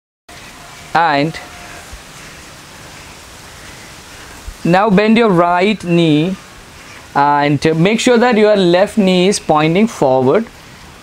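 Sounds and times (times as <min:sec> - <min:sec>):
microphone background hiss: 0:00.3 - 0:11.0.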